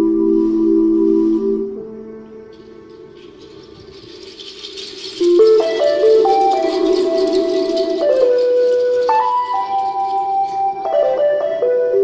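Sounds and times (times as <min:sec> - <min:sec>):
high-pitched percussion rattling: 0:02.5 - 0:11.2.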